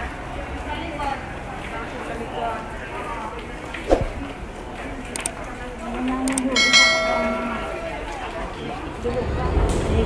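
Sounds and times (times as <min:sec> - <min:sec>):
bell-like chime: 0:06.6 - 0:07.9.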